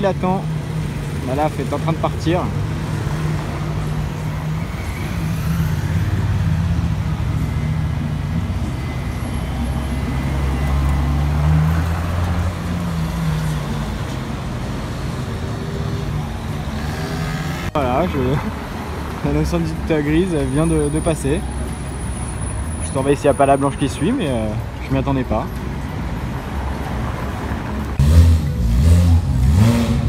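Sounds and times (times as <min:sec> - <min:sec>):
voices: 0:17.7 - 0:25.6.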